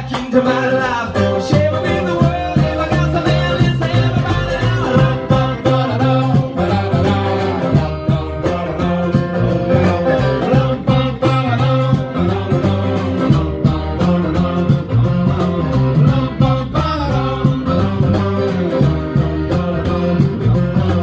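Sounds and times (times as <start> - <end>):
acoustic guitar strummed: 0.0 - 21.0
bass guitar: 0.0 - 21.0
hand percussion: 0.0 - 21.0.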